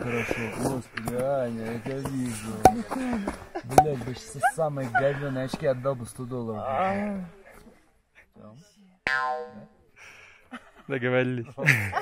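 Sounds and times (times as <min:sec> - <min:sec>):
twangy comic boing: 0:09.1 - 0:09.7.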